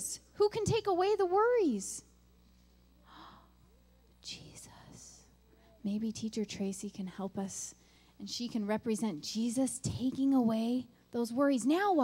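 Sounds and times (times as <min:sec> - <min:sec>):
low steady hum: 0:00.0 - 0:12.0
faint breathy sound: 0:03.0 - 0:05.8.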